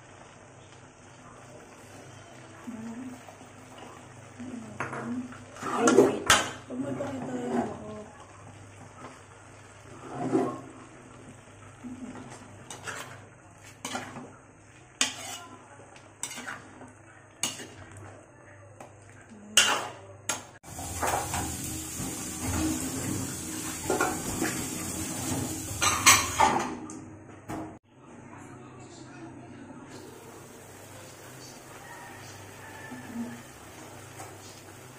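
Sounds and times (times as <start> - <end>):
food sizzling in a wok: 0.0 - 18.0, 18.8 - 26.5, 29.9 - 34.9
metal spatula scraping pan: 9.8 - 10.8, 12.1 - 14.3, 15.0 - 15.6, 16.2 - 16.8, 17.4 - 17.9
food hissing in a wok: 20.6 - 26.0, 30.0 - 34.9.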